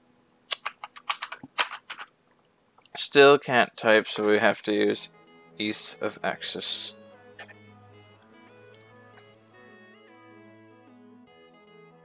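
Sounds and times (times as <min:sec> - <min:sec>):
computer keyboard typing: 0:00.5 - 0:02.1, 0:08.6 - 0:09.6.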